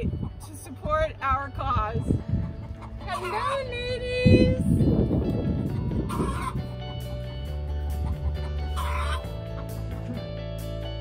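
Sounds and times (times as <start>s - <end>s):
background music with low bass: 0.0s - 11.0s
hen clucking call: 2.4s - 3.7s, 6.0s - 7.2s, 7.9s - 9.8s.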